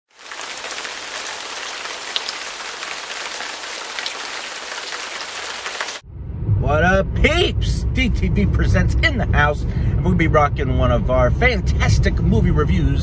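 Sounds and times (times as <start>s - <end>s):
heavy rain falling: 0.1s - 6.0s.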